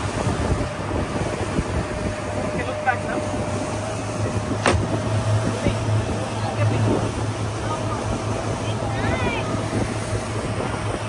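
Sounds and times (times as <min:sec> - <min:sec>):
motorboat engine running: 0:00.0 - 0:11.0
water noise: 0:00.0 - 0:11.0
wind on microphone: 0:00.0 - 0:11.0.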